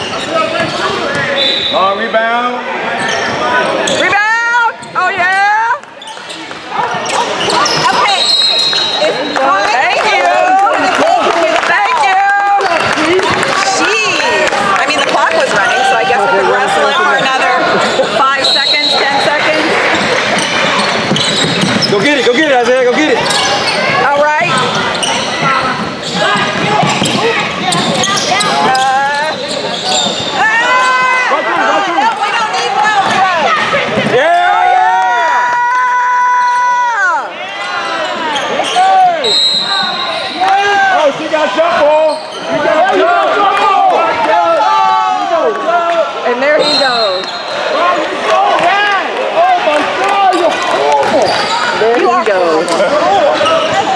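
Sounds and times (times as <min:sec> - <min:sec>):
sneakers squeaking on floor: 0:00.0 - 0:02.0, 0:02.9 - 0:09.8, 0:14.8 - 0:34.2, 0:37.6 - 0:40.5, 0:41.7 - 0:43.0, 0:46.3 - 0:48.0, 0:50.2 - 0:53.9
voices of players and onlookers: 0:00.0 - 0:53.9
basketball dribbling: 0:18.7 - 0:29.2.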